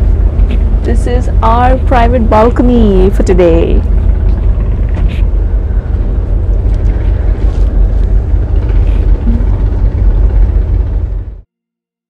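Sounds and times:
wind rushing over microphone: 0:00.0 - 0:11.4
boat engine low rumble: 0:00.0 - 0:11.5.

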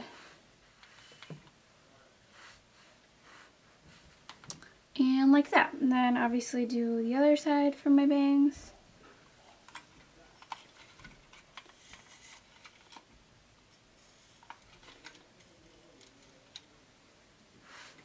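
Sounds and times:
light handling sounds: 0:09.0 - 0:16.8.

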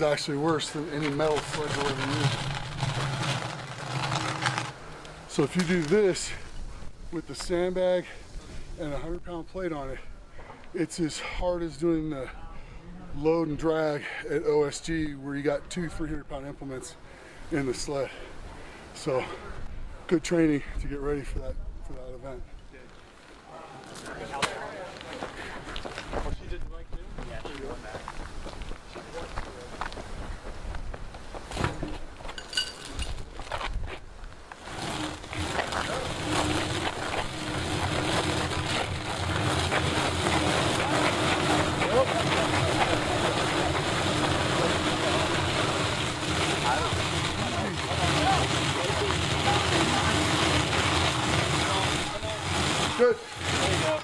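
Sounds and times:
tire dragged over asphalt: 0:00.0 - 0:06.6, 0:32.8 - 0:54.0.

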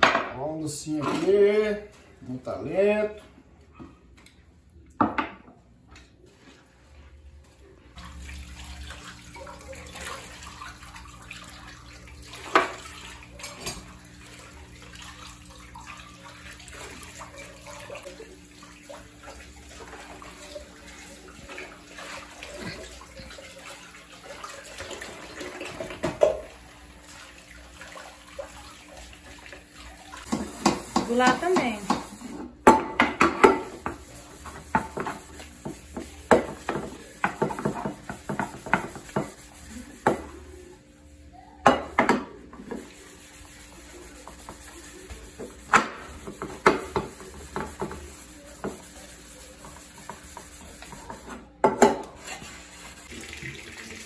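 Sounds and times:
sponge scrubbing dishes: 0:06.2 - 0:54.0
tap water running: 0:07.9 - 0:40.8, 0:41.6 - 0:54.0
crockery and pots knocking: 0:30.3 - 0:34.0, 0:34.7 - 0:39.4, 0:41.6 - 0:42.4.

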